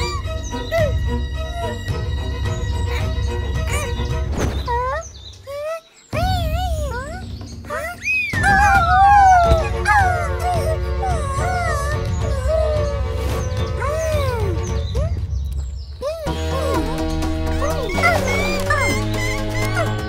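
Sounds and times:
cartoon background music: 0.0s - 20.0s
cartoon character wordless cries: 4.8s - 13.2s, 16.0s - 20.0s.

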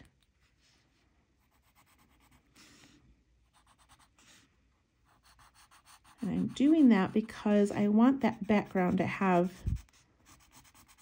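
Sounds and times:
pencil scratching on paper: 1.4s - 11.0s.

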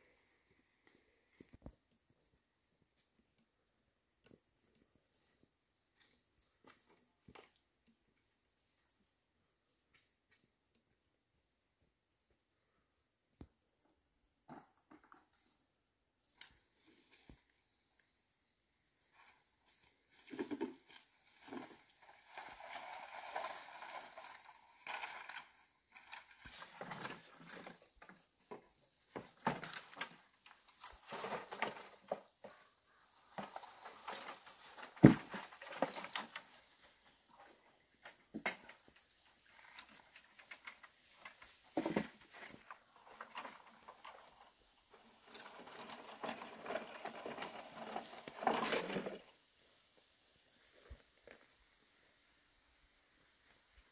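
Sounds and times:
poles dragged over ground: 19.0s - 52.3s
dry grass and leaves rustling: 19.0s - 53.9s.

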